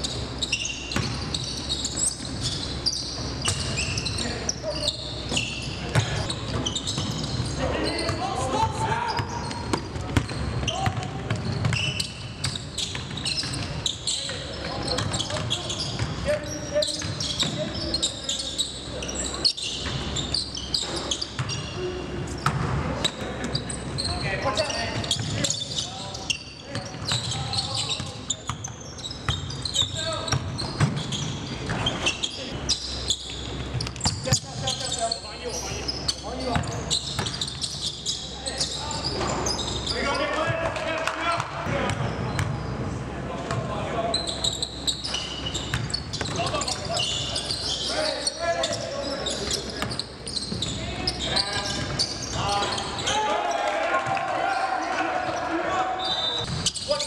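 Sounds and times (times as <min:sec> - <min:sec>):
players calling out: 0:43.8 - 0:57.0.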